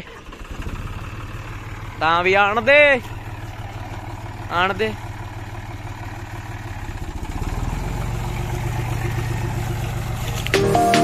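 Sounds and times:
tractor diesel engine running: 0.0 - 11.0
background music: 10.5 - 11.0.

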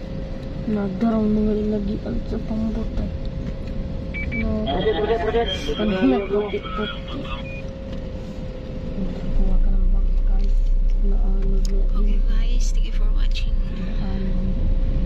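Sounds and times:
car road noise: 0.0 - 15.0.

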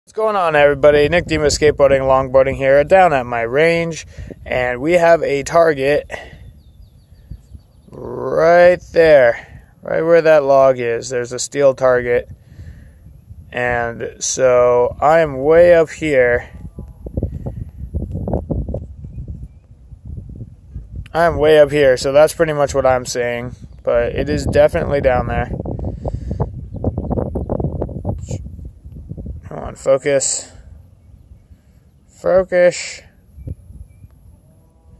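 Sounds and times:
wind buffeting microphone: 0.2 - 34.9.

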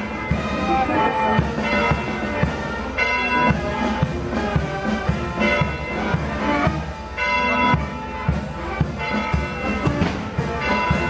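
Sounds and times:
procession band music: 0.0 - 11.0
sustained brass tones: 0.0 - 11.0.

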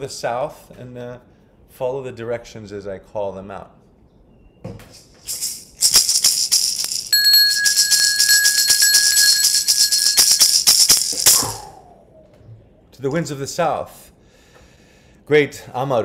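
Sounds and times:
hand rattle shaking: 4.9 - 11.8
metallic ringing tone: 6.6 - 11.8.

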